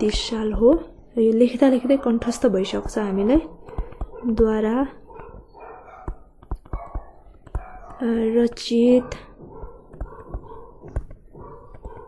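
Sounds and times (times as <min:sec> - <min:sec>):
stylus clicking on tablet screen: 0:02.3 - 0:12.0.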